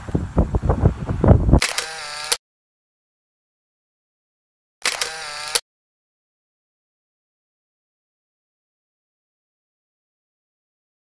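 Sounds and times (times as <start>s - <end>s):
camera shutter sound effect: 1.6s - 2.4s, 4.8s - 5.6s.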